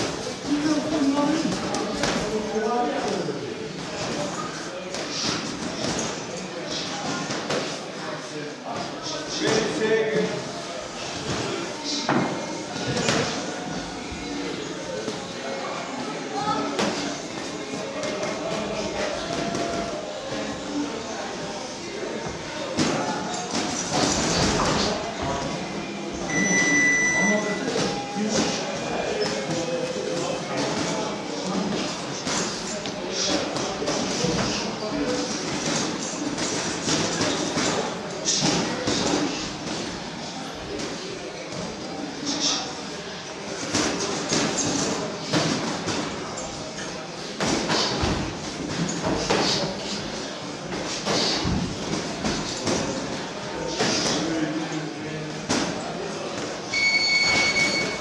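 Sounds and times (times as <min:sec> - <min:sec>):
short high beep: 0:26.3 - 0:27.6, 0:56.7 - 0:58.0.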